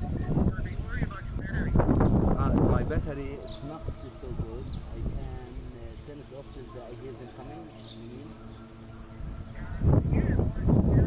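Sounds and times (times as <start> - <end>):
faint distant voices: 0.0 - 11.0
outdoor background: 0.0 - 11.0.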